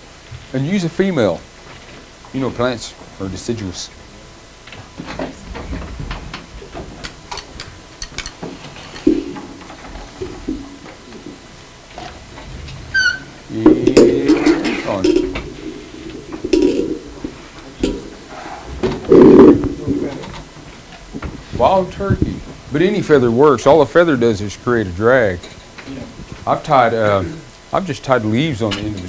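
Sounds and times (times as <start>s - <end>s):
indistinct voices: 9.1s - 20.6s
brief high squeak: 12.9s - 13.4s.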